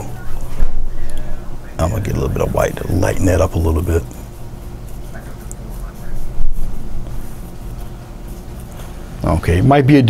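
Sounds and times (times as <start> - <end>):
steady low hum: 0.0 - 10.0
paintbrush dabbing on palette: 2.4 - 9.0.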